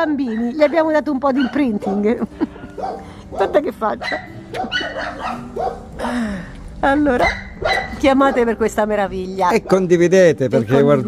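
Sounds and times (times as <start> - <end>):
puppy high-pitched calls: 2.8 - 5.9.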